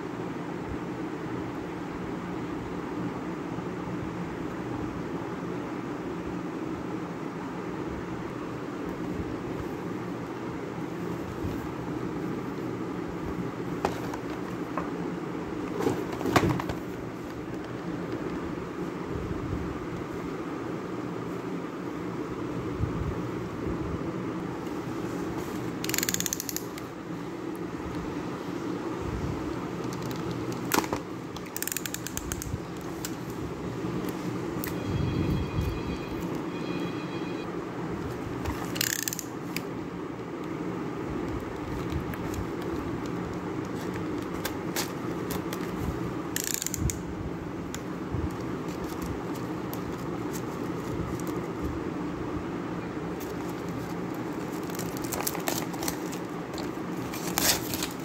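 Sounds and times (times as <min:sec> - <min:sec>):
room hum: 0:00.0 - 0:58.0
fast ratcheting clicks: 0:25.8 - 0:26.8, 0:46.4 - 0:47.0
plastic film crinkling: 0:53.1 - 0:58.0.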